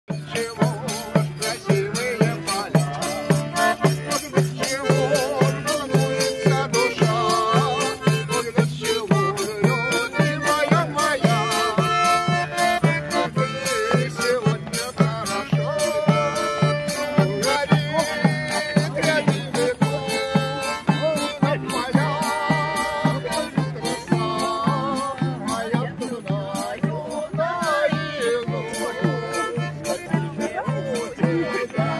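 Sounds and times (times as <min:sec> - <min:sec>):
button accordion folk dance tune: 0:00.1 - 0:31.9
tambourine jingling: 0:00.1 - 0:31.9.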